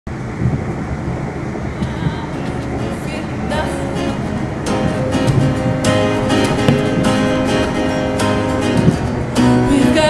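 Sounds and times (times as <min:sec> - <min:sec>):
train rumble inside carriage: 0:00.1 - 0:08.0
plucked acoustic guitar: 0:01.8 - 0:10.0.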